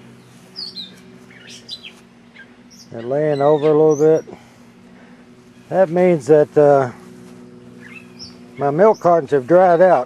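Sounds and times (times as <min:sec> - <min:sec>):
songbirds chirping: 0:00.0 - 0:10.0.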